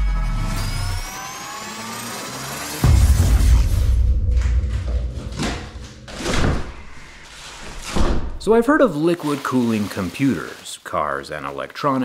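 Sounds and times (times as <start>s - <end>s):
rising whines: 0.0s - 6.1s
low rumble: 2.8s - 7.6s.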